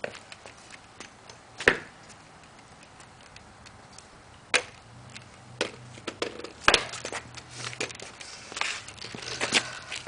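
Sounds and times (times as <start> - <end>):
scooter clacking on asphalt: 0.0 - 10.0.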